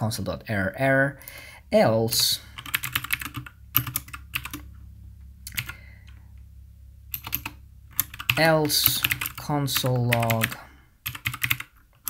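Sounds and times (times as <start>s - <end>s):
computer keyboard typing: 2.6s - 4.7s, 5.5s - 5.8s, 7.1s - 12.0s.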